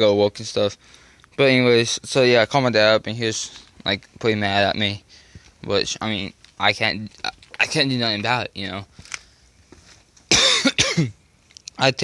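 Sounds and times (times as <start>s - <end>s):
man coughing: 10.3s - 11.2s.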